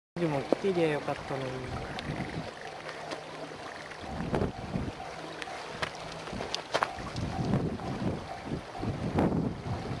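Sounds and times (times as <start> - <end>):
distant train running: 0.3 - 10.0
wind buffeting microphone: 1.2 - 2.7, 4.0 - 10.0.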